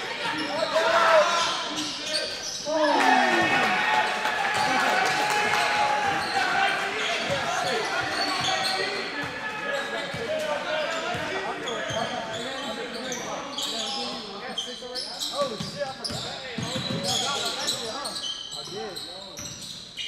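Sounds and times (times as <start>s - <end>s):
sneakers squeaking: 0.0s - 3.5s, 5.6s - 20.0s
people calling out: 0.0s - 9.9s.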